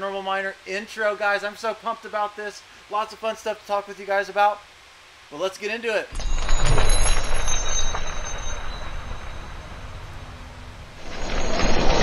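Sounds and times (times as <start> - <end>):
thin high ringing tones: 6.1 - 12.0.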